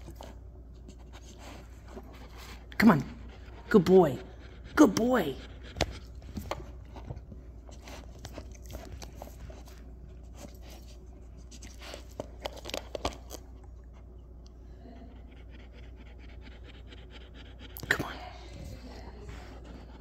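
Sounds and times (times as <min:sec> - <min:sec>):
dog licking: 0:05.0 - 0:14.0
dog chewing a treat: 0:05.6 - 0:14.4.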